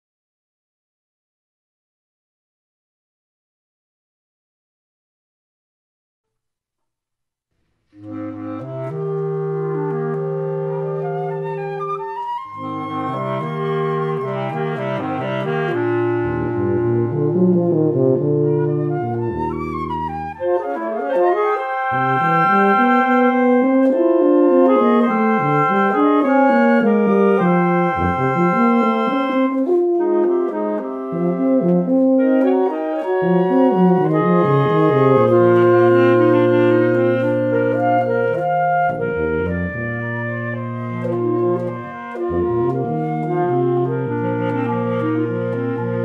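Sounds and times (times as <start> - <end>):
wind quintet playing: 8.0 - 46.0.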